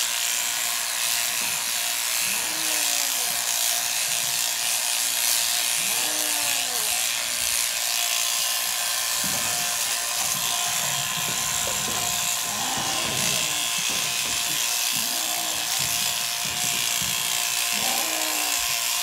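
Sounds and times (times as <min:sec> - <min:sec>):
electric shears buzzing: 0:00.0 - 0:19.0.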